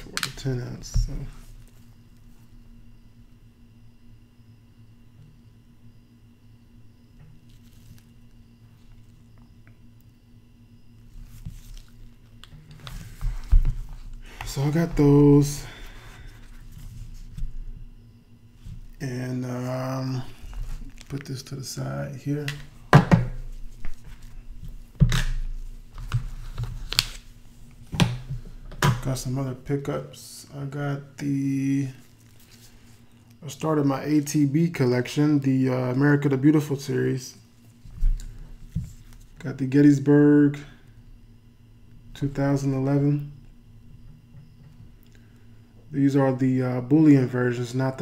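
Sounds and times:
low steady hum: 0.0s - 48.0s
plastic gloves rustling: 7.4s - 9.3s, 11.0s - 17.8s, 20.2s - 28.5s, 31.9s - 33.4s.

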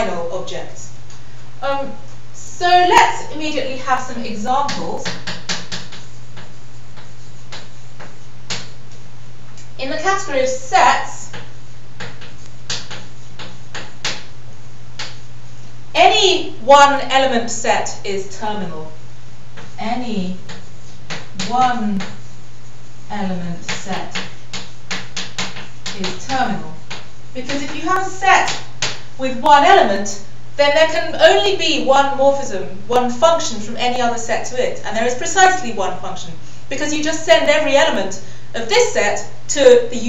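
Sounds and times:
steady low hum: 0.0s - 40.0s
chalk scraping on blackboard: 4.7s - 8.8s, 11.1s - 15.4s, 19.6s - 29.0s.

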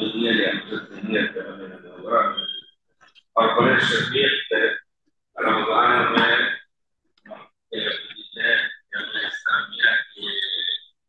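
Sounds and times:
man speaking over microphone: 0.0s - 2.5s, 3.4s - 4.8s, 5.4s - 6.6s, 7.3s - 10.8s.

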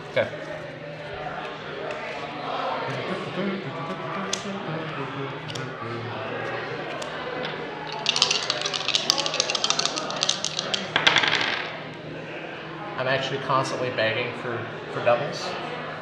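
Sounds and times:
murmur of background chatter: 0.0s - 16.0s
dice rattling in hands: 7.0s - 11.8s
dice tossed onto wooden table: 7.4s - 11.8s.

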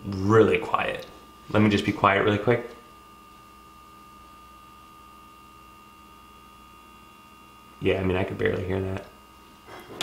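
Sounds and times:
small cooling fan hum: 0.0s - 10.0s.

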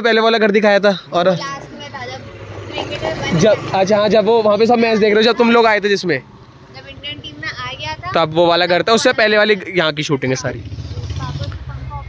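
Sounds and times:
indistinct talk: 0.0s - 12.0s
scooter engine idling: 6.4s - 12.0s.

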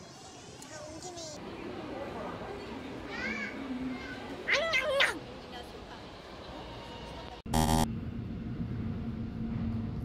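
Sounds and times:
crowd chatter: 0.0s - 7.4s.

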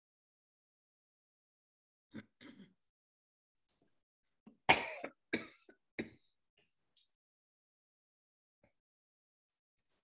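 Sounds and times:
throat sounds: 2.1s - 2.8s
person coughing: 4.7s - 6.3s.

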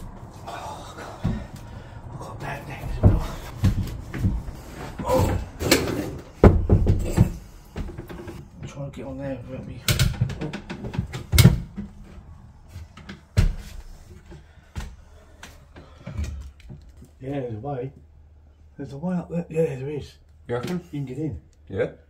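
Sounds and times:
wooden chair scraping and bumping: 2.9s - 8.5s.

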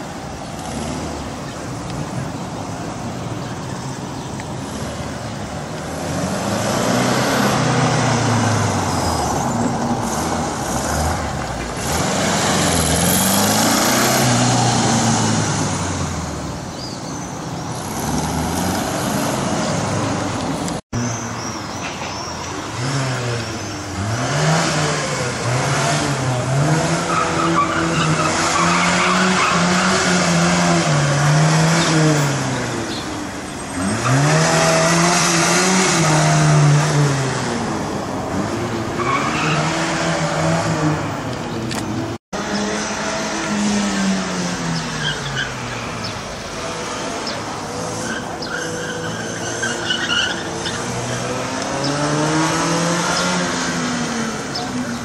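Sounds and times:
car engines revving: 0.0s - 55.0s.

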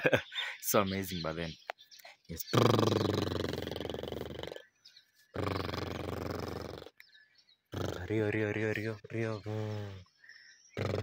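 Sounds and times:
horse nickering: 2.5s - 4.6s, 5.4s - 7.0s, 7.7s - 8.3s, 10.8s - 11.0s.

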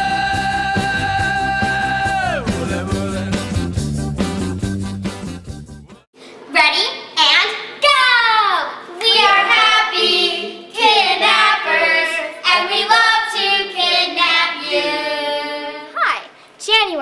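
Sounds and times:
children singing a jingle: 8.9s - 16.0s.

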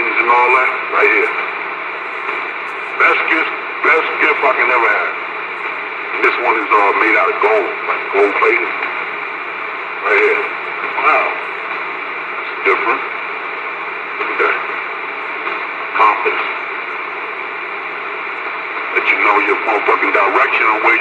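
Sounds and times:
radio speaker hissing: 0.0s - 21.0s
bursts of radio voices: 2.0s - 15.0s, 15.6s - 17.1s, 18.8s - 21.0s.

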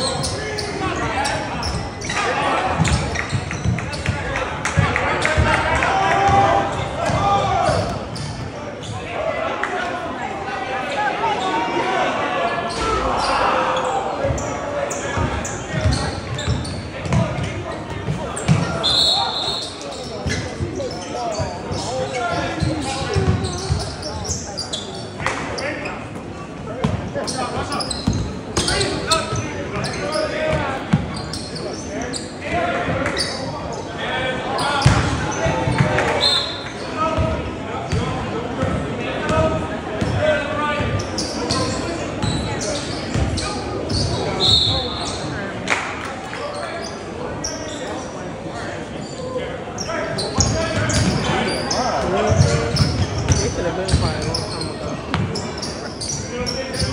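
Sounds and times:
sneaker squeaks: 0.0s - 9.1s, 12.5s - 33.9s, 34.5s - 37.3s, 37.9s - 45.5s, 46.4s - 48.2s, 48.9s - 56.9s
voices and shouts echoing: 0.0s - 56.9s.

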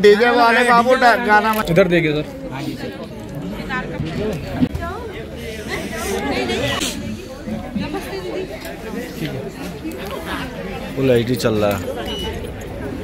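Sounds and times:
crowd chatter in a room: 0.0s - 13.0s.

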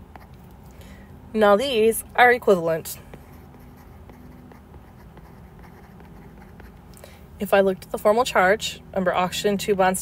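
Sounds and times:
background hum: 0.0s - 10.0s
stylus scratching on tablet: 2.8s - 6.8s.

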